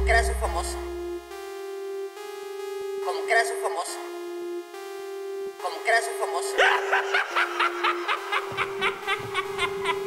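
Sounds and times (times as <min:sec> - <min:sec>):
held synth note: 0:00.0 - 0:01.4
low bass: 0:00.0 - 0:01.4
rhythmic laughter: 0:06.4 - 0:10.0.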